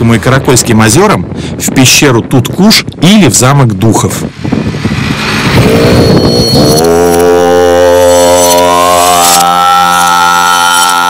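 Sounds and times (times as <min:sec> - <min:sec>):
snowmobile engine running: 0:04.6 - 0:11.0.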